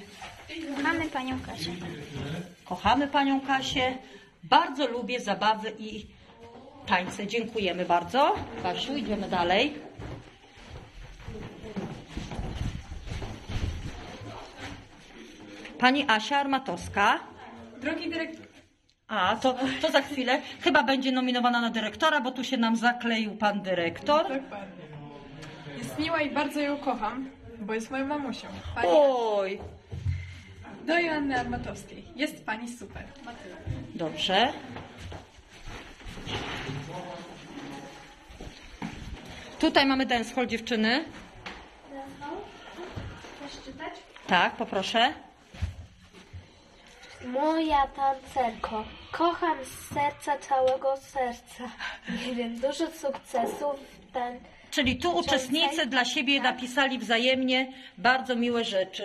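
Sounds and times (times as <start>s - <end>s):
footsteps on hard floor: 5.9s - 15.5s, 32.8s - 47.0s.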